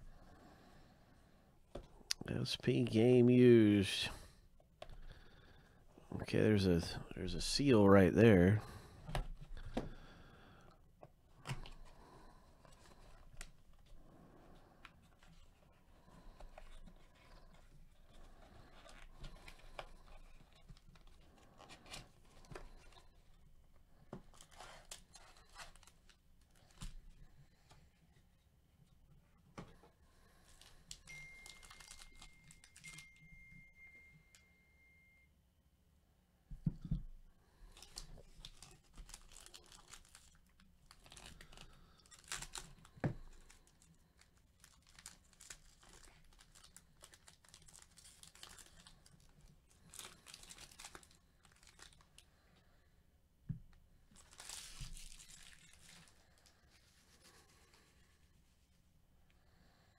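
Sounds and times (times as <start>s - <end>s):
foil wrapper crinkling and tearing: 30.5s - 32.9s, 37.7s - 52.2s, 54.2s - 57.0s.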